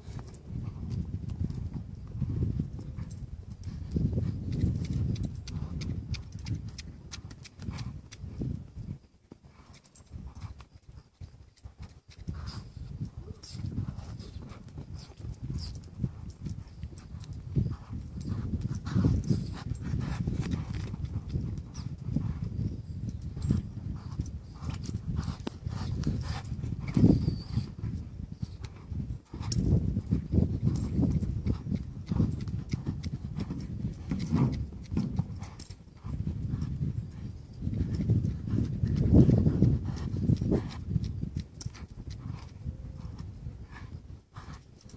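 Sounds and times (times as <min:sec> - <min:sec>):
hoofbeats in sand: 0:00.0 - 0:44.9.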